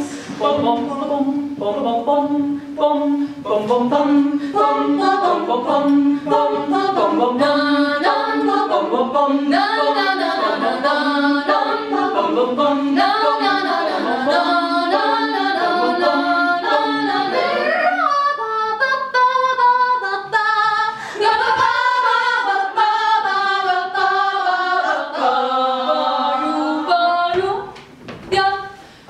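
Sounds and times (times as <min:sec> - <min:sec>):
women singing a cappella harmony: 0:00.0 - 0:28.9.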